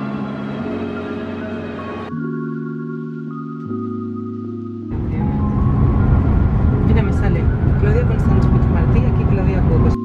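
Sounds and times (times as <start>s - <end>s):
loud low rumble: 4.9s - 10.0s
people talking: 5.0s - 5.4s, 6.8s - 10.0s.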